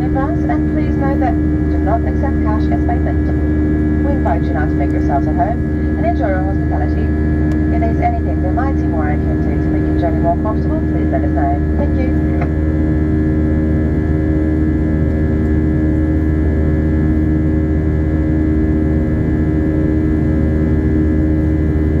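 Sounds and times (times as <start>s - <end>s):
airplane cabin drone: 0.0s - 22.0s.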